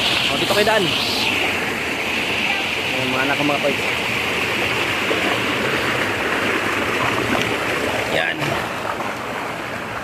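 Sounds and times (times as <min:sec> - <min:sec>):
stream rushing over rocks: 0:00.0 - 0:10.0.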